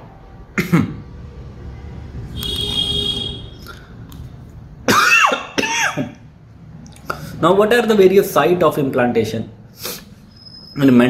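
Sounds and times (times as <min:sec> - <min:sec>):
man coughing: 0:00.6 - 0:01.0, 0:04.9 - 0:06.2
throat clearing: 0:00.6 - 0:01.0.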